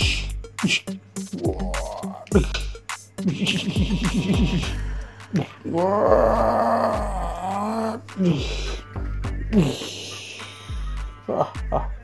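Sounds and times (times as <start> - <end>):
rough vocal roar: 5.4 - 8.4.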